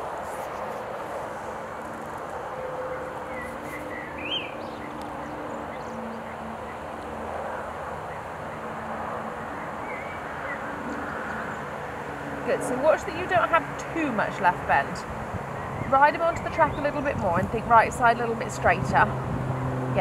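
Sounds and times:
outdoor background noise: 0.0 - 20.0
bird chirps: 2.8 - 6.8, 9.5 - 11.7.

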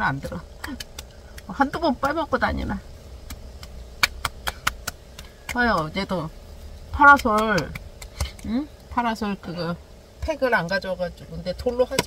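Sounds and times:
low steady rumble: 0.0 - 12.0
hands slapping face: 0.6 - 2.2, 3.2 - 5.9, 7.1 - 8.5.

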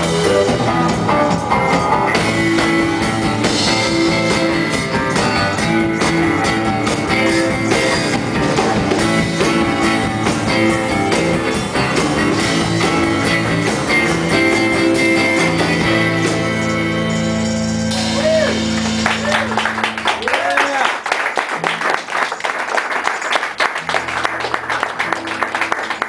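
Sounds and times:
acoustic guitar strumming: 0.0 - 20.2
drum kit: 0.0 - 21.8.

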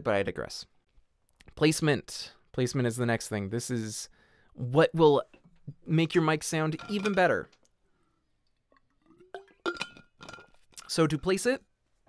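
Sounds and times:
water bottle cap clinking: 6.7 - 7.3, 8.8 - 11.0.

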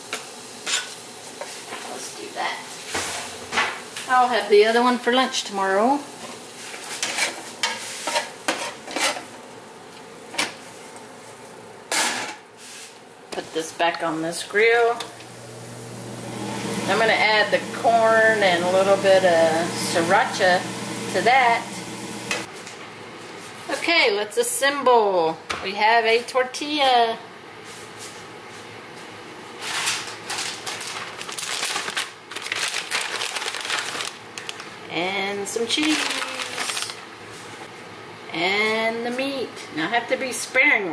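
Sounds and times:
faint sizzle: 0.0 - 25.3, 26.9 - 40.6
utensil scraping a frying pan: 6.6 - 9.3
plastic bag crinkling: 29.9 - 34.9, 35.6 - 37.1.

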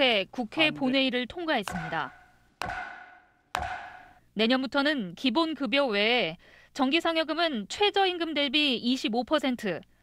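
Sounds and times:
wooden gavel knocks: 1.6 - 4.2.

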